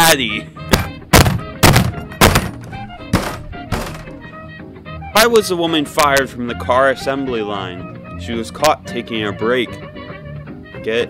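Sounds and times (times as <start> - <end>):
faint background music: 0.0 - 11.0
fist thumping wooden table: 0.7 - 4.2.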